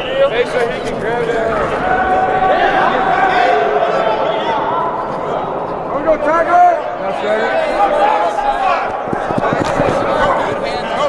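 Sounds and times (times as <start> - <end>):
crowd shouting and chattering: 0.0 - 11.0
sharp knocks: 8.9 - 11.0.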